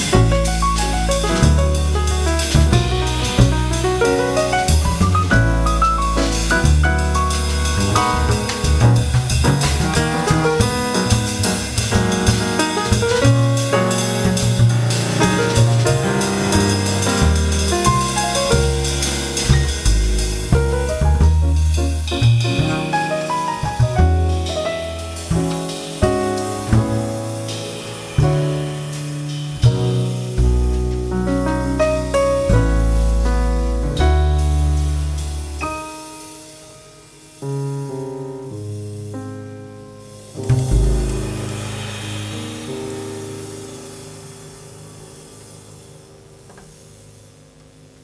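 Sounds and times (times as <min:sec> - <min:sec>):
double bass: 0:00.0 - 0:36.2, 0:37.4 - 0:48.0
drum kit with cymbals: 0:00.0 - 0:48.0
piano: 0:00.0 - 0:48.0.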